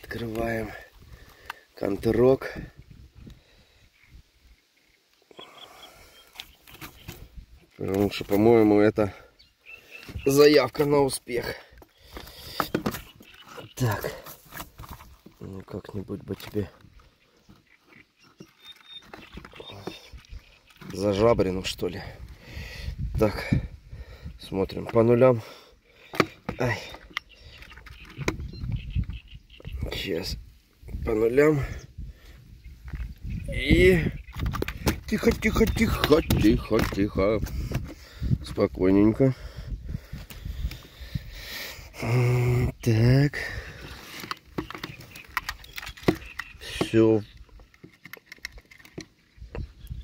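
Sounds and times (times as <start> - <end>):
fish handled on wooden boards: 6.2 - 8.5, 10.0 - 21.8, 26.0 - 28.5, 34.2 - 38.2, 43.6 - 49.8
man speaking: 13.6 - 14.3.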